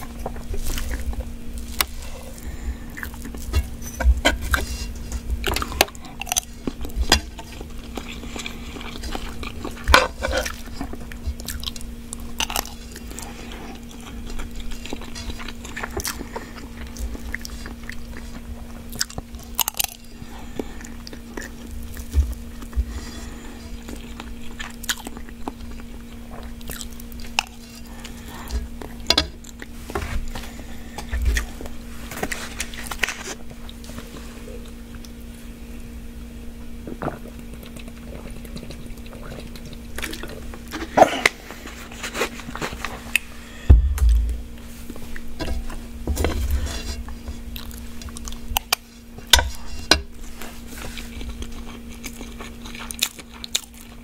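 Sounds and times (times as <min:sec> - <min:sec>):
chewing and biting: 0:00.0 - 0:35.2, 0:36.8 - 0:43.3, 0:47.1 - 0:54.0
steady low hum: 0:00.0 - 0:54.0.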